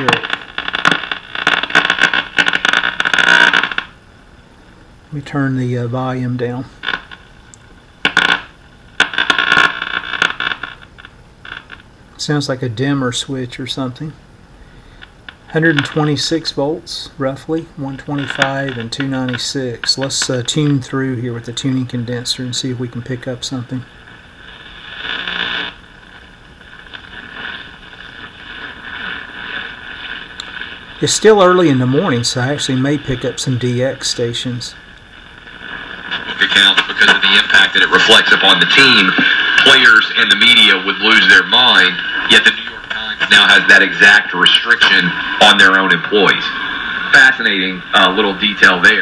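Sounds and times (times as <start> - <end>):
buzzing crackling radio interference: 0.0 - 49.0.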